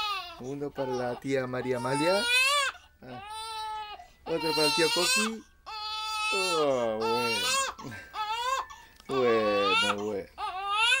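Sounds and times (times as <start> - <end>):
baby crying: 0.0 - 11.0.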